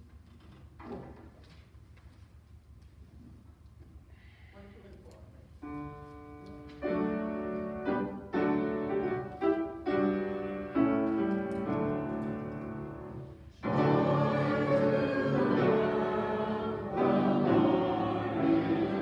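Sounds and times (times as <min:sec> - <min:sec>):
congregation singing: 0:11.6 - 0:19.0.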